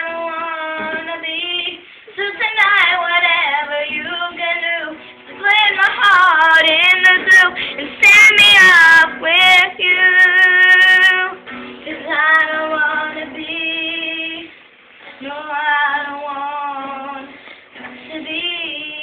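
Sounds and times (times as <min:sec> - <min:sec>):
acoustic guitar strumming: 0:00.0 - 0:01.6, 0:02.4 - 0:19.0
girl singing: 0:00.0 - 0:19.0.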